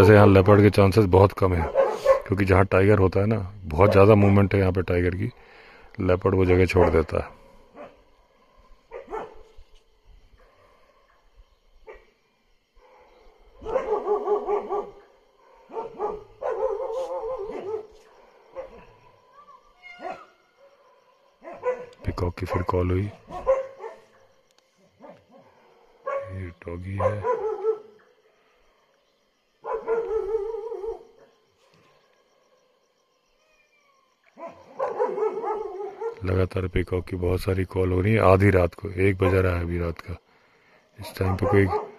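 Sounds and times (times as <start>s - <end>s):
dogs barking and whining: 1.5s - 2.4s, 6.7s - 9.5s, 12.8s - 28.2s, 29.6s - 31.4s, 34.3s - 36.3s, 41.2s - 41.9s.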